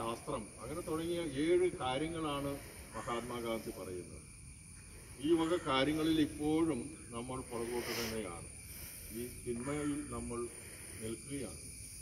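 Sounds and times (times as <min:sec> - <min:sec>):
faint high hiss: 0:00.0 - 0:12.0.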